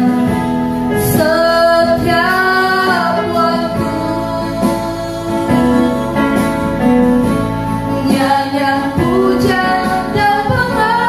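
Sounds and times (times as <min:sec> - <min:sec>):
electronic keyboard accompaniment: 0:00.0 - 0:11.0
women singing worship song: 0:00.0 - 0:11.0.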